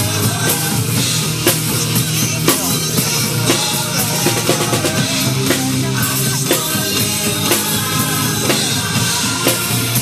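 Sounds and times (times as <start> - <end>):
drum kit playing: 0.0 - 10.0
rock backing track: 0.0 - 10.0.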